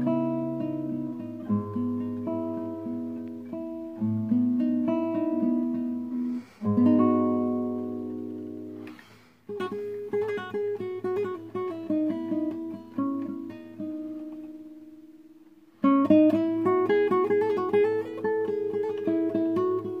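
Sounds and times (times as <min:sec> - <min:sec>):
fingerpicked classical guitar: 0:00.0 - 0:20.0.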